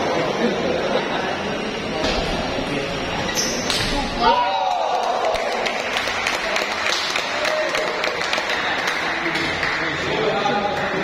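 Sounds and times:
hall noise: 0.0 - 11.0
spectators clapping: 4.4 - 11.0.

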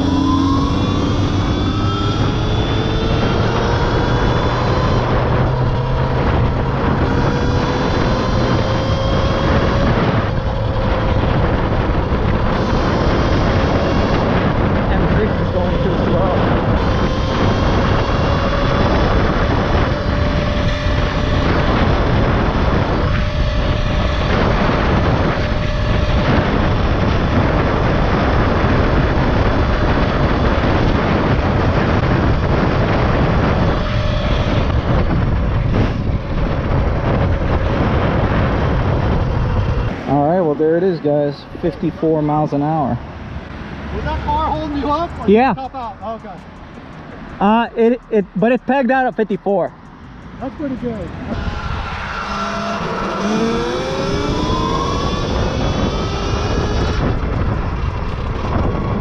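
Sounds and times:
electric motor whining: 0.0 - 41.2, 49.2 - 59.0
wind rush on microphone: 0.0 - 59.0.

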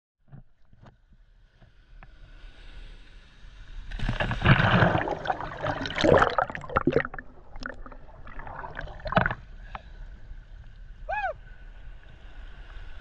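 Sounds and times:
wave breaking: 3.9 - 9.6
seawater lapping and splashing: 3.9 - 9.8.

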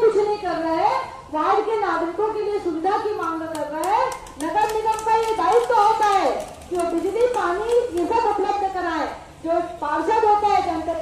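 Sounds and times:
hand-clapping: 3.5 - 8.2.

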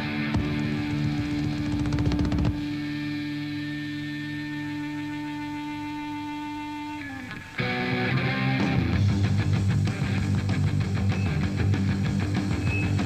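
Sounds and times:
rapid drum hits: 0.2 - 2.7
electric guitar chord ringing: 2.6 - 11.9.

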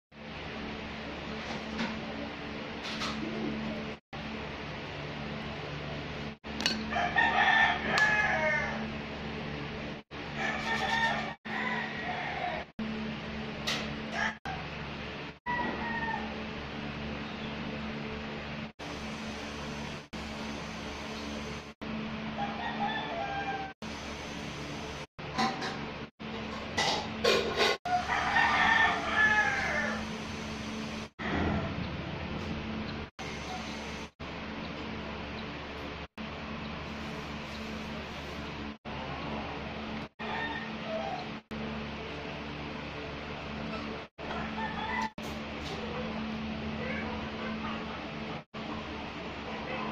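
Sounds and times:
rooster crowing: 6.9 - 8.9, 10.3 - 12.7, 14.1 - 14.6, 15.5 - 16.5, 22.4 - 23.8, 27.9 - 30.1, 40.2 - 41.2, 44.2 - 45.3.

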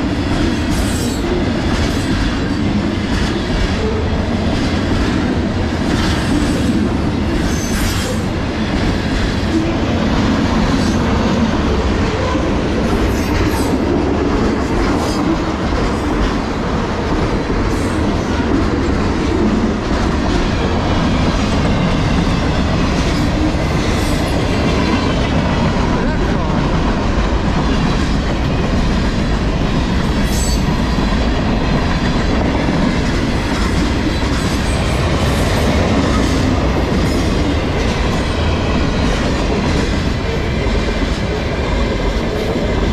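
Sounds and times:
train wheels rumbling on rails: 0.0 - 42.9.

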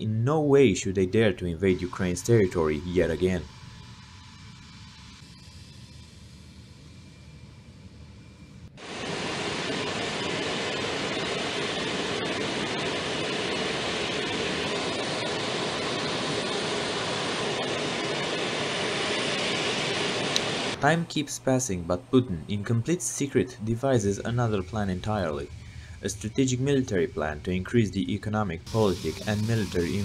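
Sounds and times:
jet engine roar: 1.6 - 21.0, 23.9 - 30.0.

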